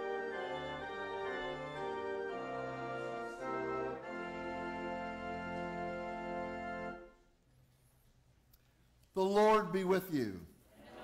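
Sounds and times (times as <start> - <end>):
organ playing held chords: 0.0 - 7.2.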